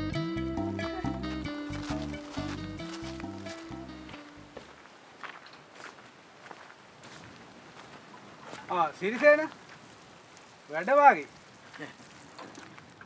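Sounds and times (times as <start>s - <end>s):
background music with bass line: 0.0s - 4.6s
footsteps on dirt path: 0.8s - 10.6s.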